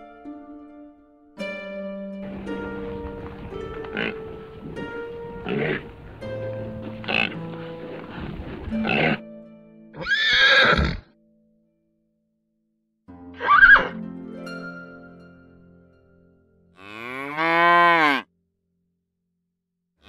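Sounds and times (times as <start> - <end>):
background music with held notes: 0.0 - 12.3, 13.0 - 17.9
animal calls: 5.4 - 5.9, 13.4 - 13.9.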